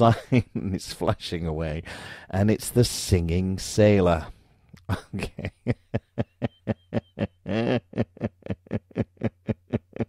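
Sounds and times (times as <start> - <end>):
man laughing: 4.8 - 10.0.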